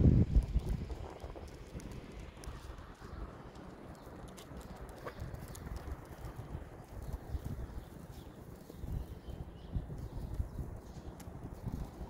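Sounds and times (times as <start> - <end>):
faint light clicks: 11.1 - 11.4.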